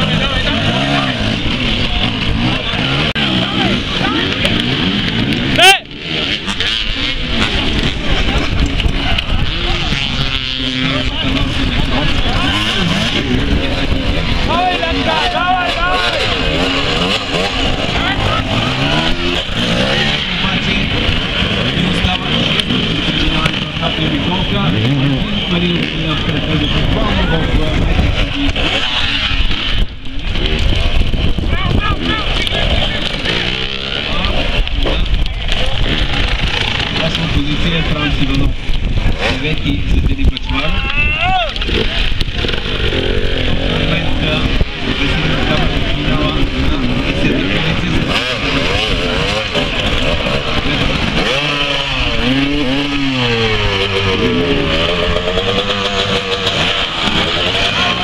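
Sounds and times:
dirt bike engines revving: 0:00.0 - 0:58.0.

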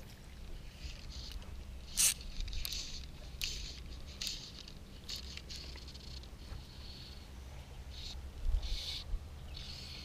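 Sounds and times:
fishing line hissing zips: 0:00.8 - 0:07.3, 0:07.9 - 0:10.0.

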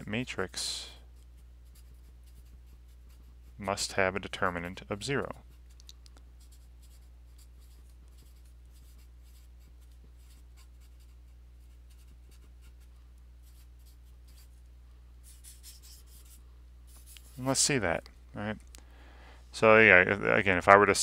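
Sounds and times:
low steady hum: 0:00.0 - 0:21.0
marker writing on paper: 0:06.4 - 0:14.5, 0:15.3 - 0:17.4.

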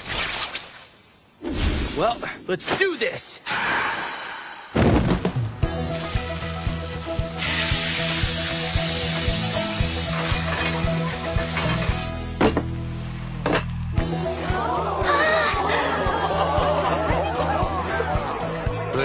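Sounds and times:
background music: 0:04.8 - 0:19.0
food sizzling in frying pans: 0:05.9 - 0:12.2.

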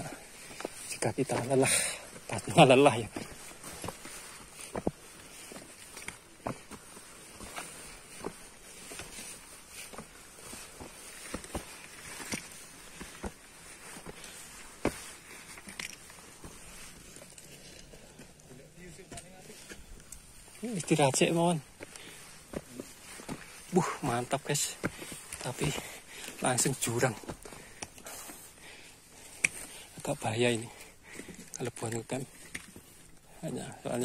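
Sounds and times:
footsteps on dirt trail: 0:00.0 - 0:34.0.

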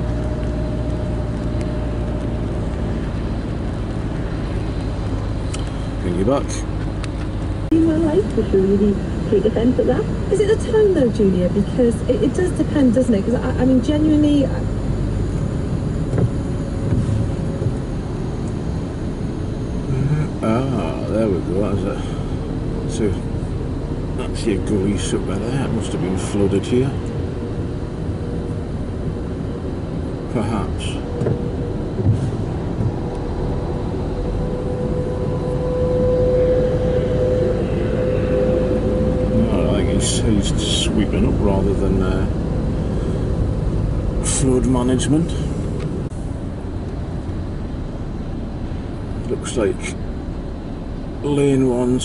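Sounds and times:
car engine and tyres rumbling: 0:00.0 - 0:52.0
steady whine: 0:00.0 - 0:52.0.

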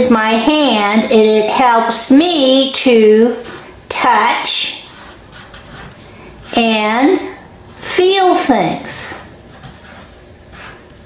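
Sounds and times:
marker scratching on paper: 0:03.3 - 0:06.8, 0:09.1 - 0:10.9.

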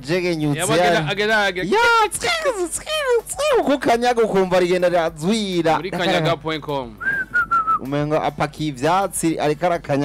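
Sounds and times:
man talking: 0:00.0 - 0:02.8, 0:03.4 - 0:07.0
person whistling: 0:07.0 - 0:07.9.

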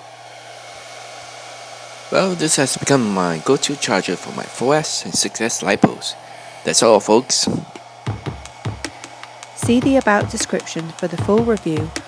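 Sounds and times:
cooling fans whirring: 0:00.0 - 0:12.0
low steady hum: 0:02.0 - 0:12.0.

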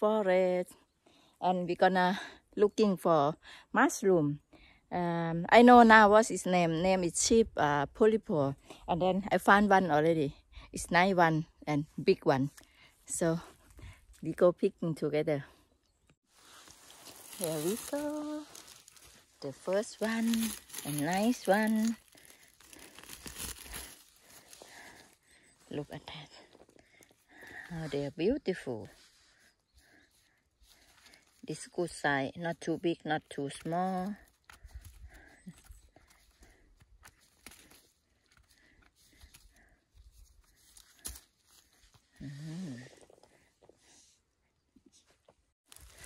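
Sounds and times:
dry leaves crackling and rustling: 0:16.5 - 0:25.1, 0:45.7 - 0:46.0.

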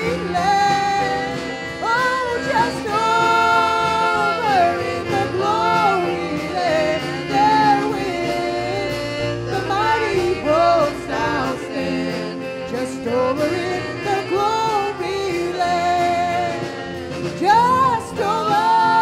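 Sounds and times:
band of keyboards and drums: 0:00.0 - 0:19.0
woman singing gospel: 0:00.0 - 0:19.0.

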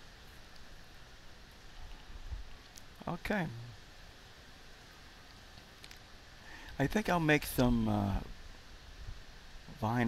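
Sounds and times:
faint room hiss: 0:00.0 - 0:10.0
faint click: 0:05.5 - 0:06.0.

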